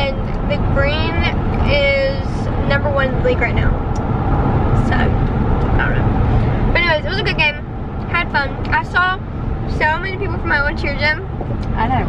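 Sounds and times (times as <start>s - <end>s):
car cabin road and engine rumble: 0.0s - 12.0s
voices talking: 0.0s - 12.0s.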